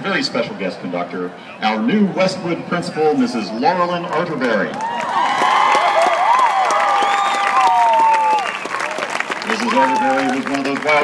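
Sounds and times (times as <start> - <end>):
crowd clapping and cheering: 4.1 - 11.0
voices shouting: 9.5 - 10.4.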